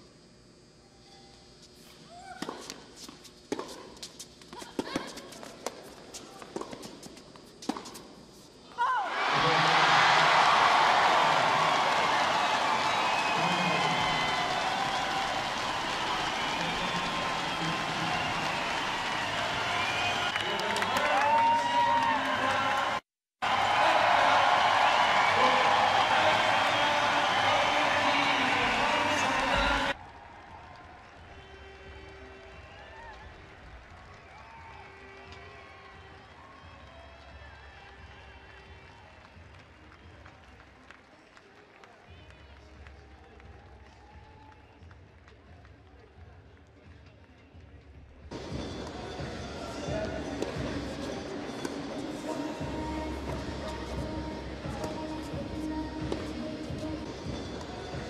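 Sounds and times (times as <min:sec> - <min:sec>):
crowd cheering and applauding: 0:09.0 - 0:46.0.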